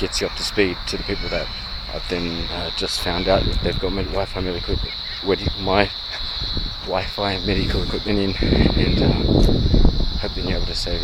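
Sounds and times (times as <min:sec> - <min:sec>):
man murmuring: 0:00.0 - 0:09.6, 0:10.2 - 0:11.0
crickets trilling: 0:00.0 - 0:11.0.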